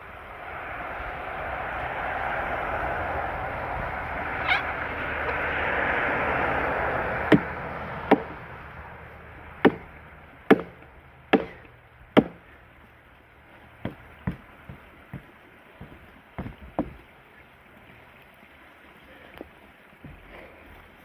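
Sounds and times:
steady rushing noise: 0.0s - 11.4s
axe chopping into log: 7.3s - 8.4s, 9.6s - 9.9s, 10.5s - 12.4s.

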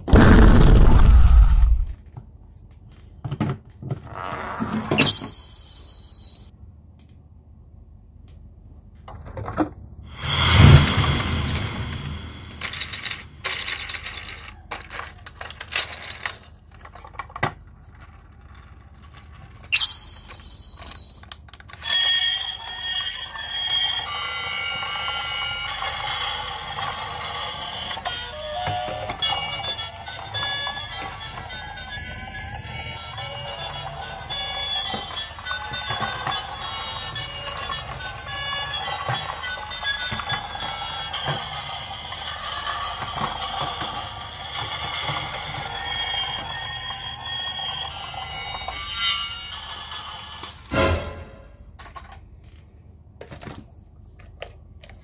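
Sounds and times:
toy beeping electronic melody: 19.8s - 21.2s, 21.8s - 50.4s.

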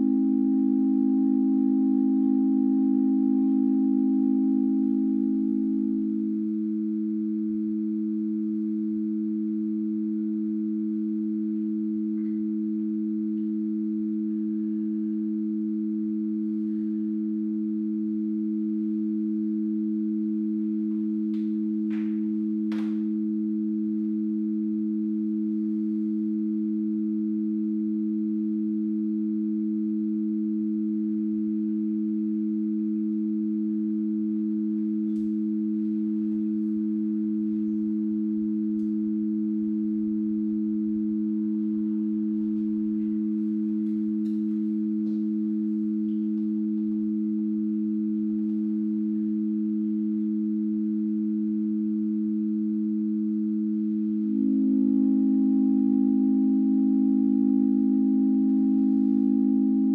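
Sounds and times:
low electronic sine tones: 0.0s - 59.9s.

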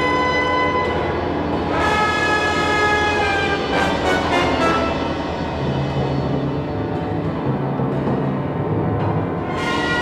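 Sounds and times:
orchestral brass chords: 0.0s - 6.6s, 9.4s - 10.0s.

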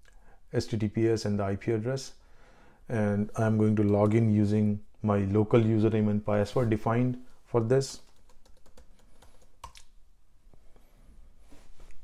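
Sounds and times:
keyboard keys clicking: 7.6s - 9.9s.

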